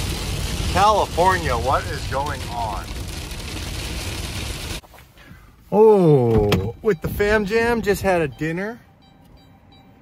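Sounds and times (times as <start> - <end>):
heavy rain on a car: 0.0 - 4.8
road rumble: 0.0 - 10.0.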